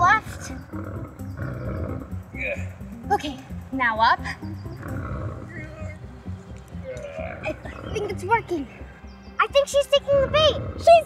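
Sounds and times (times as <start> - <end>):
background music: 0.0 - 11.0
low animal growl: 0.3 - 2.6, 4.6 - 6.1, 6.8 - 8.2, 10.1 - 11.0.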